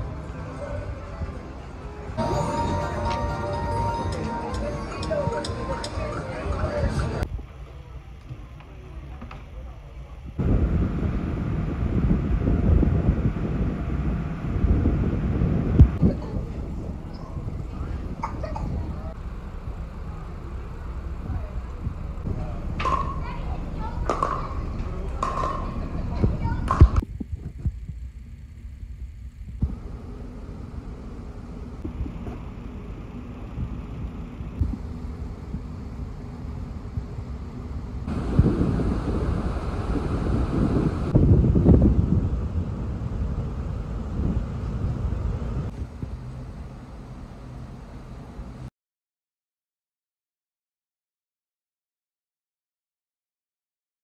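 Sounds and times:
indistinct voices: 0.0s - 10.4s
low rumbling noise: 9.8s - 48.7s
paddles hitting plastic ball: 24.1s - 24.4s, 25.2s - 25.7s.

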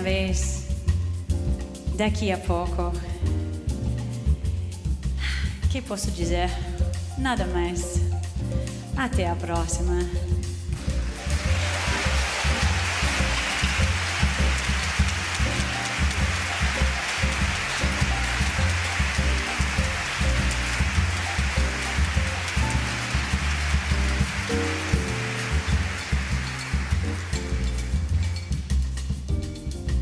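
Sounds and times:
orchestra playing: 10.7s - 29.5s
audience applauding: 10.9s - 28.7s.

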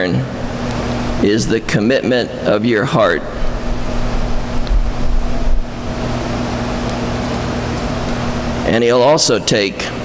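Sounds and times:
steady hum with hiss: 0.0s - 10.0s
low rumbling thumps: 3.2s - 6.5s.

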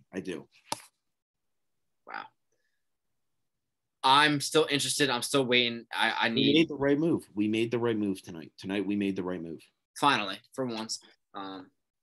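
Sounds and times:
man saying wow: 6.4s - 6.7s.

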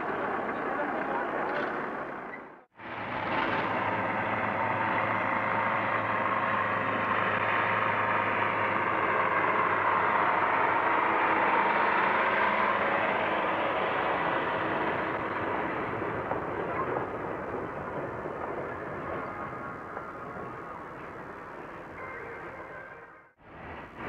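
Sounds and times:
diesel locomotive engine hum: 0.0s - 24.0s.

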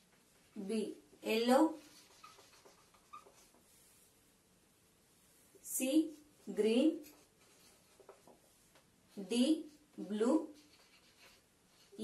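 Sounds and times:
marker squeaking on whiteboard: 1.7s - 4.0s, 7.0s - 8.5s, 10.4s - 12.0s.

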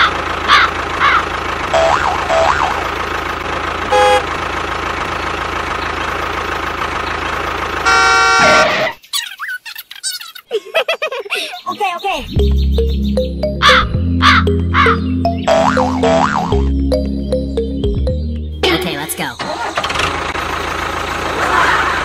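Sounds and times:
cawing calls: 0.0s - 1.3s, 13.6s - 15.1s
toy tractor motor running: 7.5s - 8.6s
background music: 12.3s - 19.2s.

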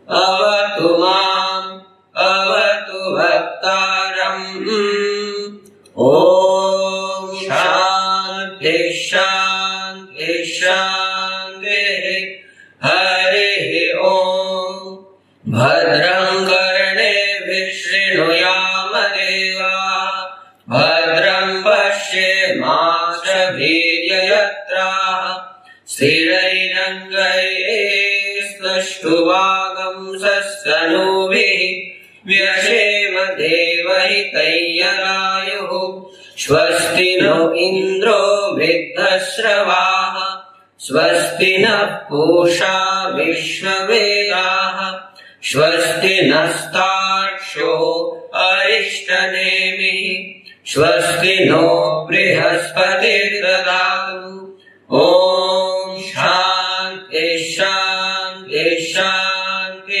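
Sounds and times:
person chanting mantras: 0.0s - 60.0s.

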